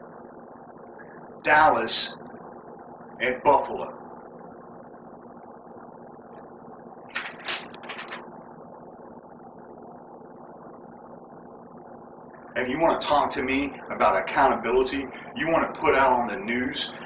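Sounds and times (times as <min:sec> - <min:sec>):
mechanical hum: 0:00.0 - 0:17.0.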